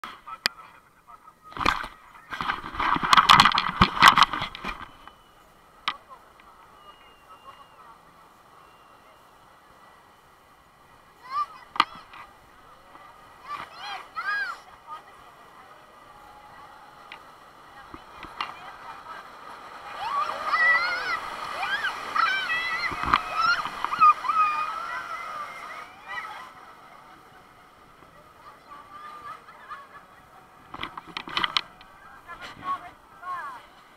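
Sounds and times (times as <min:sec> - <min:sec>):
people's voices: 0:00.1 - 0:33.9
rushing whitewater: 0:00.1 - 0:33.9
people shrieking: 0:19.9 - 0:26.6
people laughing: 0:28.8 - 0:30.6.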